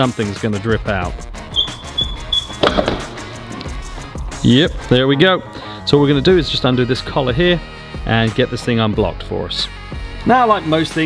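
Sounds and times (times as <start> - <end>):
background music: 0.0 - 11.0
hammer knocking metal: 1.6 - 3.4.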